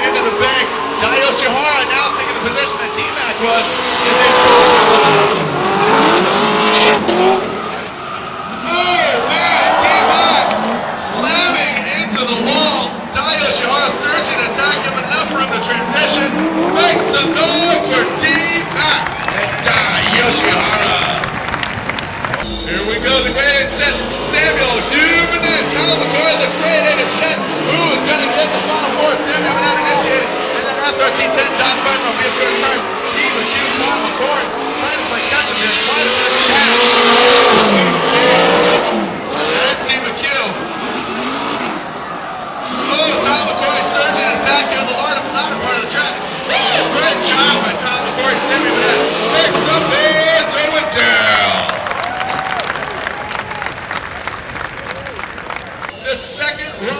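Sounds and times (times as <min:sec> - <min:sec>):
car engines revving hard: 0:00.0 - 0:51.9, 0:55.7 - 0:56.9
crowd noise: 0:00.0 - 0:56.9
indistinct voices: 0:08.6 - 0:40.8.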